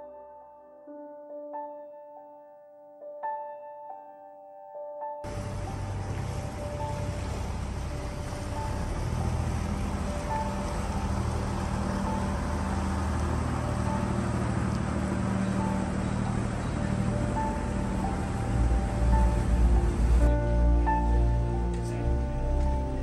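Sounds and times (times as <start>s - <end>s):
boat engine humming: 5.2s - 23.0s
canal water wash: 5.2s - 23.0s
faint background music: 5.2s - 23.0s.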